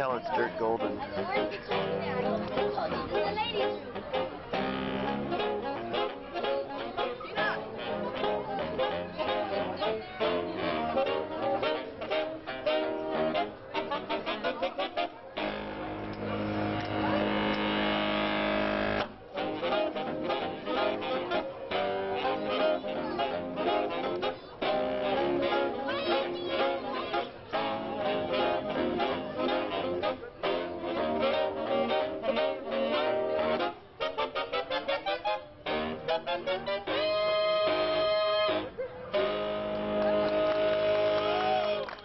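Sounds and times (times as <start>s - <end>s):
saxophone quintet playing jazz: 0.0s - 42.0s.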